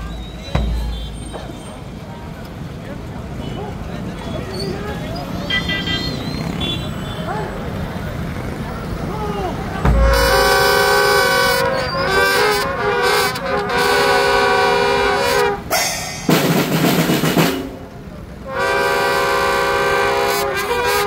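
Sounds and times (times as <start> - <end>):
street noise: 0.0 - 21.0
voices: 0.0 - 21.0
marching band brass chords: 9.8 - 21.0
bass drum stroke: 15.7 - 17.8.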